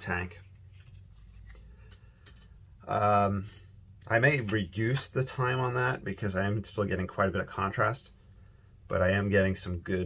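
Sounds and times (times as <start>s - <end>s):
man speaking: 2.9s - 8.1s, 8.9s - 10.0s.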